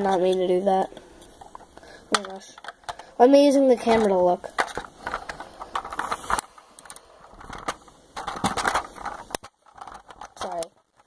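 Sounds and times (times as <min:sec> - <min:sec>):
plastic toy bricks clicking: 0:03.9 - 0:11.0.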